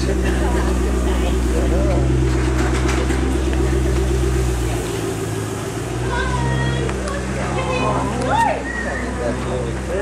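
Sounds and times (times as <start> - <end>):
car engine idling rumble: 0.0 - 10.0.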